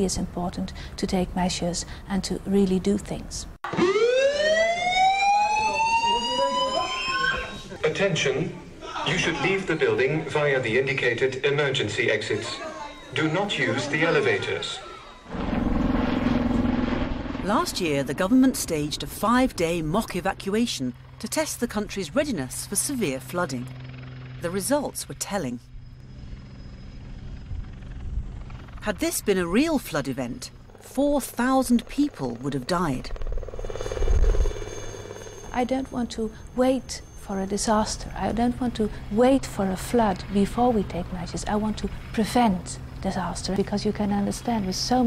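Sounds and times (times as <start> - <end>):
evacuation alarm whoop: 3.7 - 7.7, 14.0 - 15.4
helicopter rotor and engine: 12.8 - 45.0.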